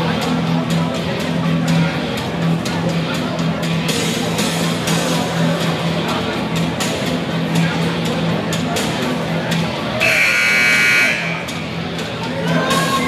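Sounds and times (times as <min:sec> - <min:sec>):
music: 0:00.0 - 0:13.0
people talking: 0:00.0 - 0:13.0
scoreboard buzzer: 0:10.0 - 0:11.5.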